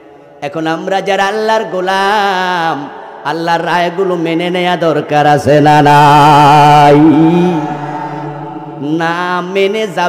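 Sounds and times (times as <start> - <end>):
man chanting sermon: 0.0 - 10.0.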